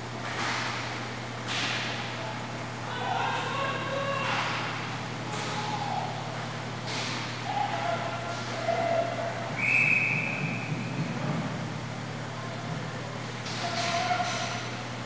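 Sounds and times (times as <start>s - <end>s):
steady hum: 0.0s - 15.0s
distant shouts: 2.8s - 10.8s, 13.5s - 14.8s
high whistle blast: 9.6s - 10.7s.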